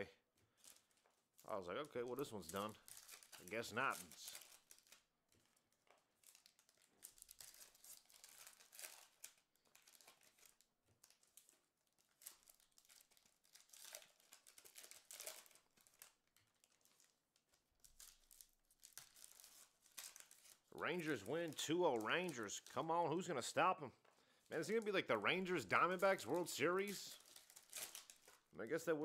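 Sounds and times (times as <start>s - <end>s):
wrapper crinkling and tearing: 0.0s - 29.0s
cards rustling: 0.5s - 11.6s, 12.2s - 29.0s.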